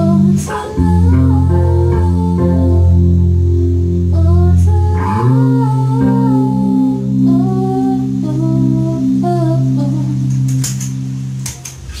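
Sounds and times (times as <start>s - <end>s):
electric bass low notes: 0.0s - 12.0s
girl's wordless vocal: 4.1s - 10.3s.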